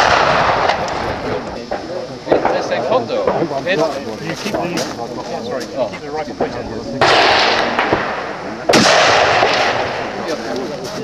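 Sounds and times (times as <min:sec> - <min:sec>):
rifle shot booming: 0:00.0 - 0:03.5, 0:06.4 - 0:10.5.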